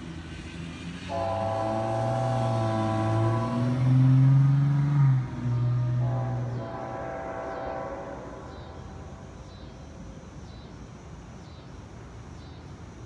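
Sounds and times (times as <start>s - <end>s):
faint locomotive rumble: 0.0s - 13.0s
locomotive air horn blasts: 1.1s - 9.4s.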